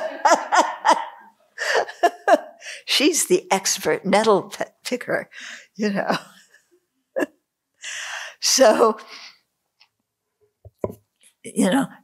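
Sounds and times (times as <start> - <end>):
woman laughing: 0.0 - 2.6.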